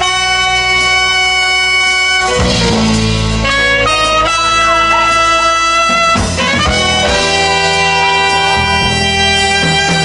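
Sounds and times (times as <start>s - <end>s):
saxophone and trumpet sustained note: 0.0s - 10.0s.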